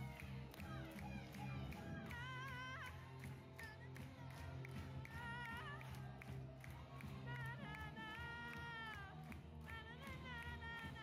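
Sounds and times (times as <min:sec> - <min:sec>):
woman singing out of tune: 0:00.0 - 0:11.0.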